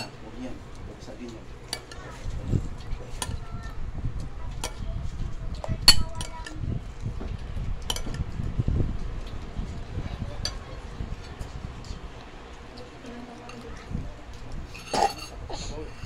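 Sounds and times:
utensils clinking on ceramic plates: 0:00.0 - 0:00.2, 0:01.6 - 0:02.2, 0:14.6 - 0:16.0
low rumble of handling: 0:00.0 - 0:16.0.

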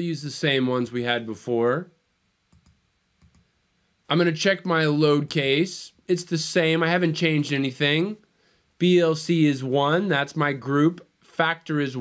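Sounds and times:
computer mouse clicks: 0:02.5 - 0:03.5.

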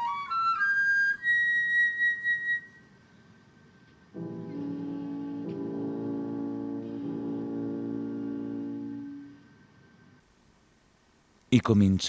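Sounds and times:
flute holding high note: 0:04.2 - 0:09.5.

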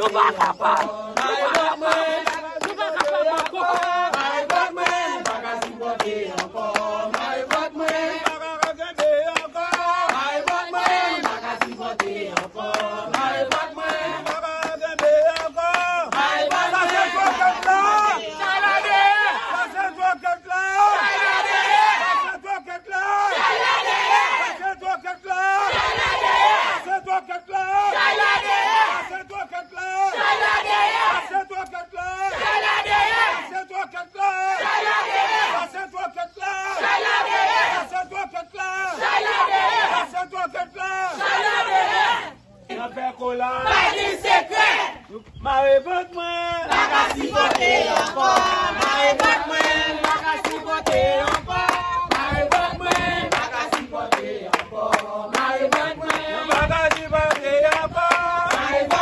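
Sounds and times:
hands clapping in time: 0:00.0 - 0:18.2, 0:46.7 - 0:59.0
crowd chanting in unison: 0:00.0 - 0:59.0
group singing: 0:00.0 - 0:59.0.

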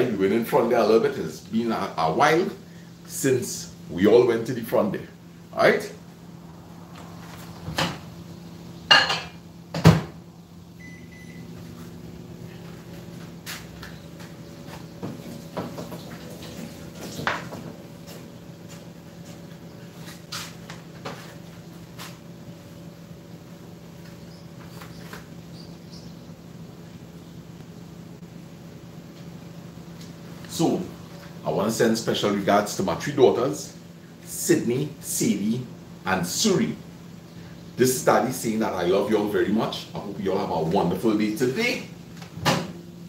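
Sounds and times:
microwave oven humming: 0:00.0 - 0:43.0
short beep: 0:10.8 - 0:11.5.

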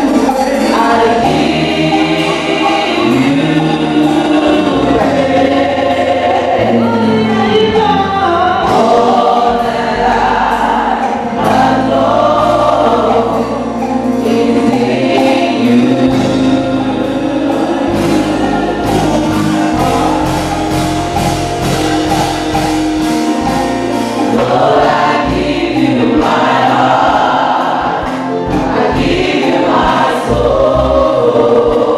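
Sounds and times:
bass line: 0:00.0 - 0:31.9
choir singing a hymn: 0:00.0 - 0:31.9.

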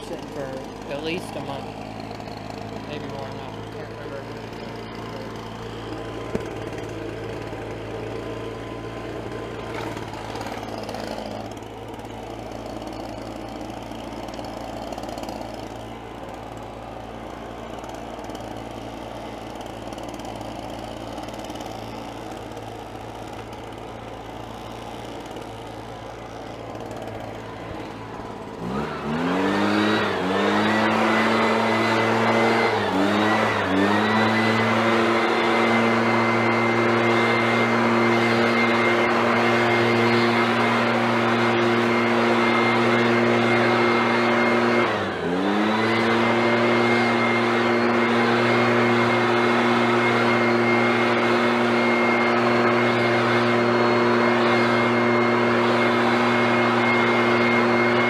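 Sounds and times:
leaf blower engine: 0:00.0 - 0:58.0.

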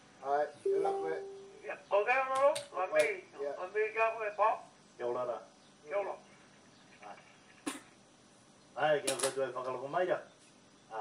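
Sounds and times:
person talking: 0:00.7 - 0:01.7.

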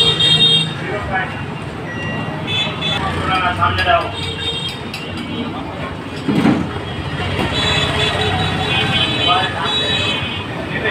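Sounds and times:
roadside traffic: 0:00.0 - 0:10.9
voices: 0:00.0 - 0:10.9.

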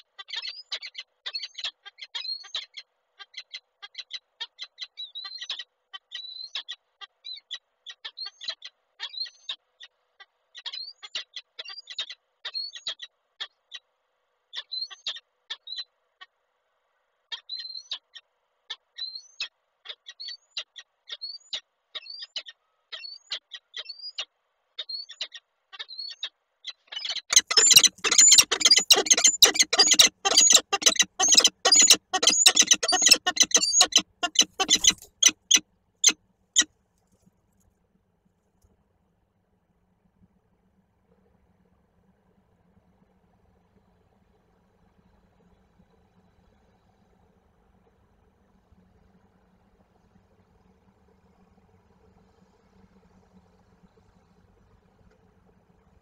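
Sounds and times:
falcons chirping: 0:27.3 - 0:36.2
harsh falcon calling: 0:27.3 - 0:36.2.

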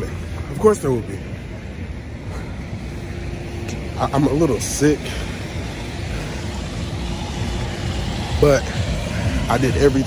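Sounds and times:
faint steady hum: 0:00.0 - 0:10.0
passing traffic rumble: 0:00.0 - 0:10.0.

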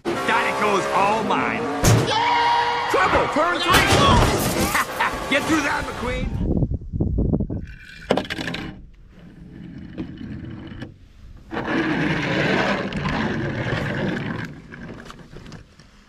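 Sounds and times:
toy car wheels scraping: 0:07.7 - 0:15.8.

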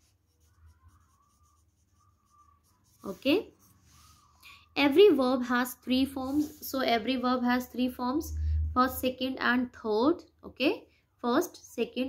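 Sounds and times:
pencil scratching on paper: 0:00.0 - 0:07.0.

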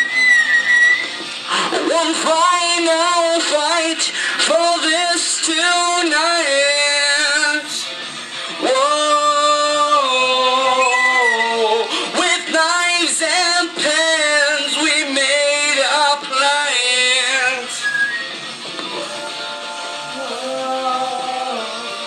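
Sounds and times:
music playing: 0:00.0 - 0:22.0
man singing heavy metal: 0:01.5 - 0:08.0, 0:08.6 - 0:17.9, 0:18.8 - 0:22.0.

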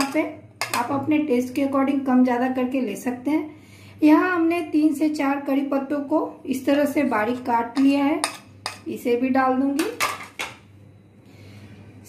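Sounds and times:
spoon and plates clattering: 0:09.8 - 0:10.6.

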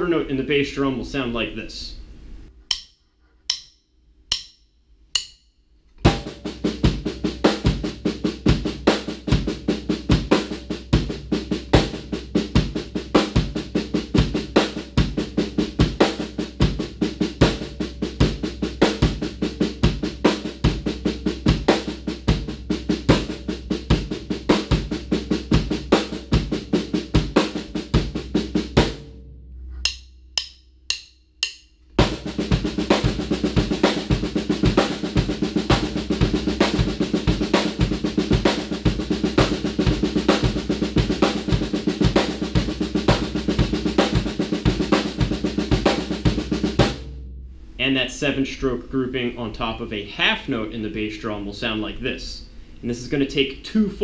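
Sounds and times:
bass drum beat: 0:06.1 - 0:48.0
snare drum pattern: 0:29.8 - 0:47.1.

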